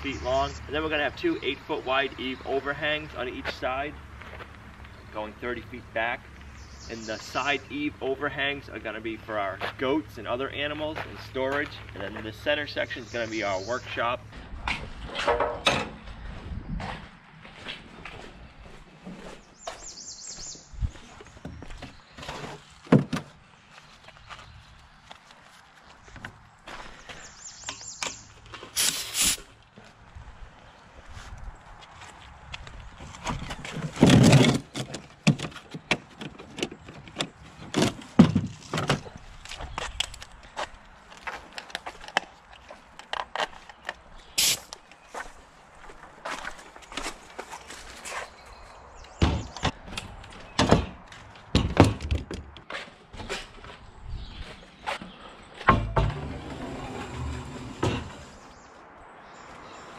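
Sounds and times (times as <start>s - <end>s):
footsteps: 3.3s - 5.0s, 10.7s - 12.5s, 14.2s - 27.3s, 44.4s - 48.8s, 52.6s - 58.3s
tools and lumber clattering: 14.3s - 16.2s, 21.2s - 23.5s, 33.0s - 40.3s, 49.1s - 53.8s, 54.8s - 58.5s
compressed air hissing: 28.8s - 29.5s, 44.4s - 44.7s.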